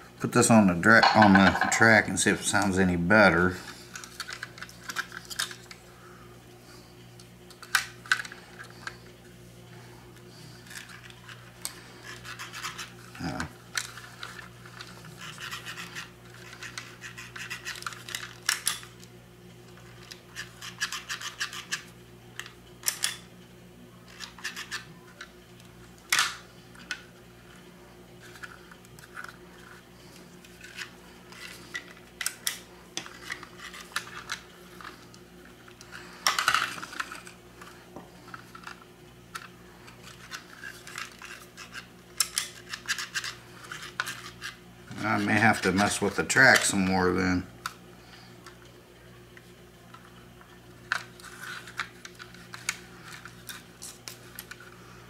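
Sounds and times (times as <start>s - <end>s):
steady low hum: 0.0s - 55.0s
plastic scratching and scraping: 35.8s - 46.6s, 50.9s - 54.8s.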